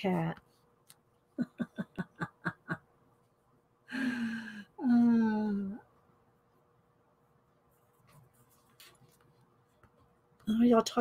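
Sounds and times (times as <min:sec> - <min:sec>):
woman laughing quietly: 0:01.3 - 0:02.9.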